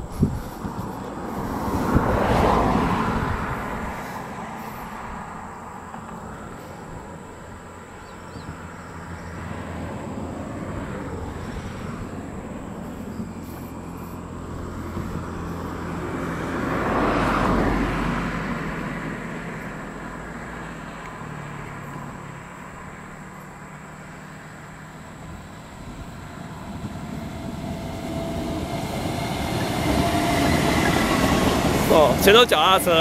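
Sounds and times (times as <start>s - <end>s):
broad swell of noise: 0.0s - 8.0s, 23.8s - 33.0s
electric train running noise: 25.1s - 33.0s.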